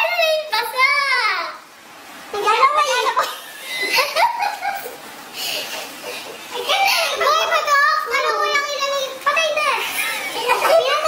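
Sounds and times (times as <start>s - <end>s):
young woman talking excitedly: 2.4s - 3.2s, 6.6s - 11.0s.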